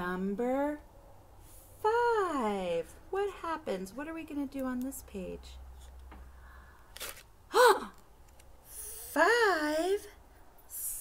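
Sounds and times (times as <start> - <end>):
woman exclaiming ooh: 7.5 - 8.0.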